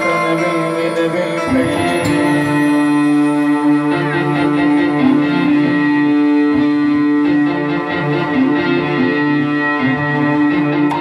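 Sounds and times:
electric guitar: 0.0 - 11.0
live band playing: 0.0 - 11.0.

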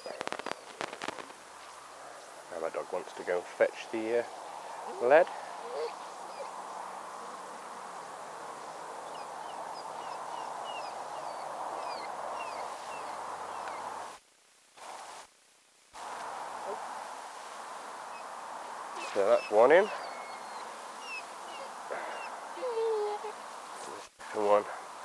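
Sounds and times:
bird chirping: 0.0 - 14.1, 18.0 - 24.1
rushing outdoor background noise: 0.0 - 14.2, 15.9 - 25.0.

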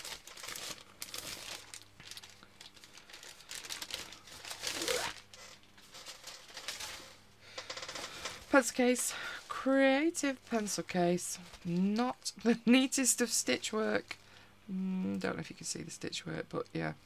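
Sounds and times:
plastic bag crinkling: 0.0 - 8.5.

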